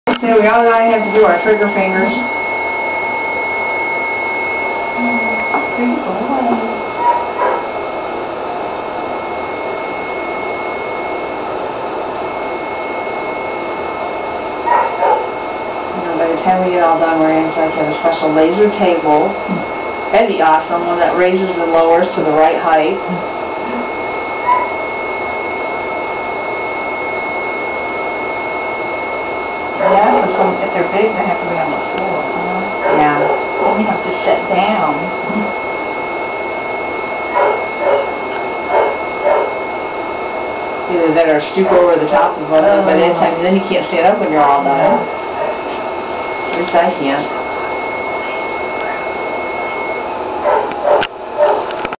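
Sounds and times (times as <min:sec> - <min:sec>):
machine hum with high whine: 0:00.0 - 0:52.0
high electronic tone: 0:00.1 - 0:52.0
short beep: 0:23.6 - 0:24.7.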